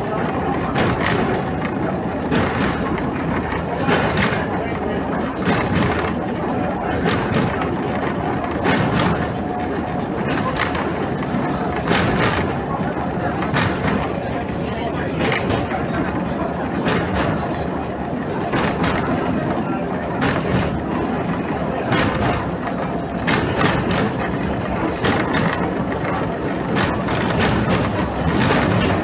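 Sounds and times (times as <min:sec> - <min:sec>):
tram rumbling on rails: 0:00.0 - 0:29.0.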